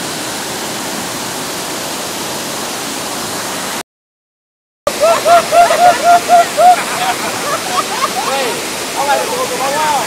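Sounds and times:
water rushing over rocks: 0.0s - 3.8s, 4.9s - 10.0s.

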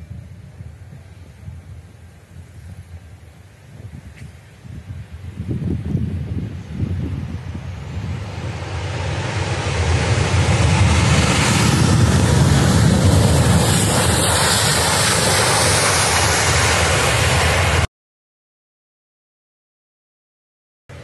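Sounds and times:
wind buffeting microphone: 0.0s - 17.6s
jet engines roaring: 6.0s - 17.9s.

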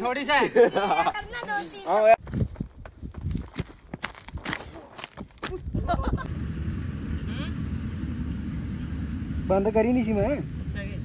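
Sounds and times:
footsteps on dry ground: 2.2s - 5.7s.

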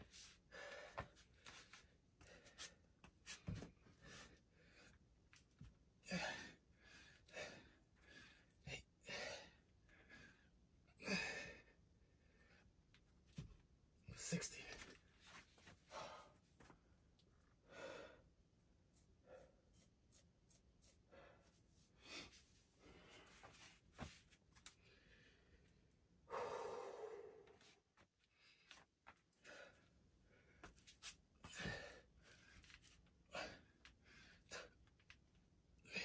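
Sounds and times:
man breathing: 0.1s - 2.8s, 15.7s - 16.4s, 17.6s - 18.3s, 21.1s - 23.8s, 24.7s - 30.8s, 31.4s - 34.9s.

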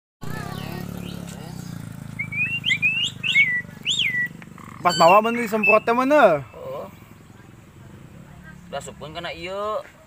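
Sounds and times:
bird whistling: 2.0s - 7.0s.

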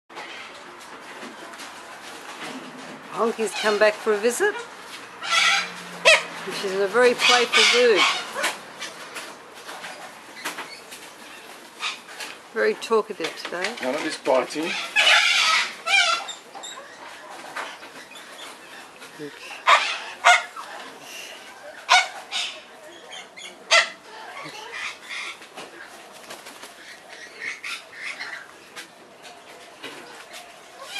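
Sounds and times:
corella squawking: 3.4s - 9.0s
harsh parrot call: 5.2s - 6.3s.

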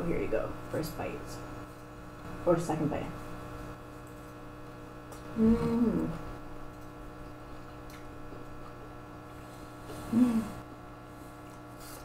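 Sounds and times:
mains hum: 0.0s - 12.0s.

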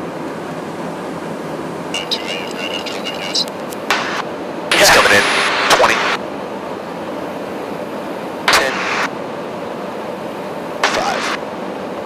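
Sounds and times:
rushing in-flight noise: 0.0s - 12.0s
voice on intercom: 1.9s - 3.6s, 4.7s - 6.2s, 8.5s - 9.1s, 10.8s - 11.4s.

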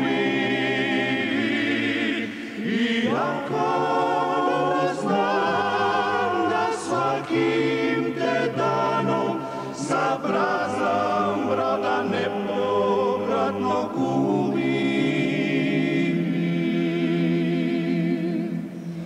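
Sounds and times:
high voice singing with vibrato: 0.0s - 19.0s
male choir singing in harmony: 0.0s - 19.0s.

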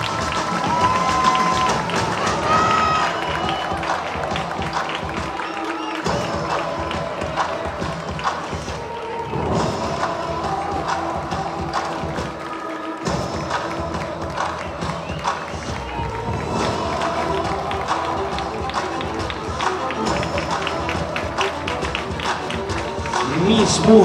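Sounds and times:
music with steady beat: 0.0s - 24.0s.

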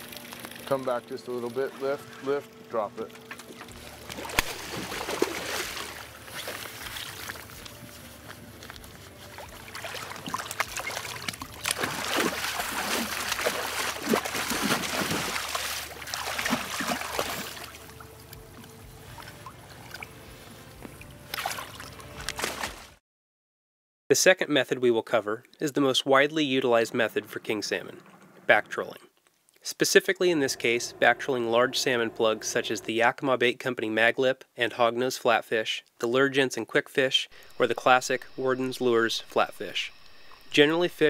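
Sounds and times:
steady low hum: 0.0s - 22.2s, 30.1s - 33.1s, 37.3s - 41.0s
fish thrashing and splashing: 3.2s - 7.9s, 8.7s - 18.3s, 21.3s - 23.0s.

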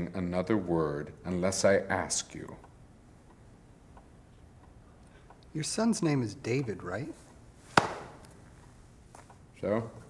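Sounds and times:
sharp knock: 7.8s - 8.2s.

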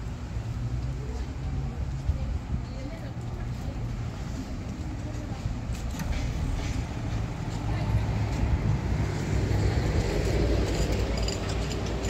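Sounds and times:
low rumble of car traffic: 0.0s - 12.0s.

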